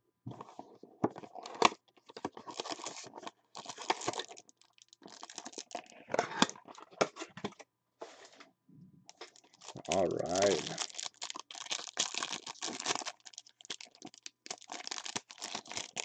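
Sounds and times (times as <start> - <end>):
wrapper tearing and crinkling: 2.3 - 6.7, 9.1 - 16.0.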